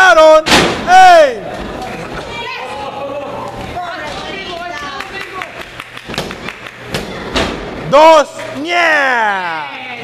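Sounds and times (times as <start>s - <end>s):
crowd voices: 1.4s - 10.0s.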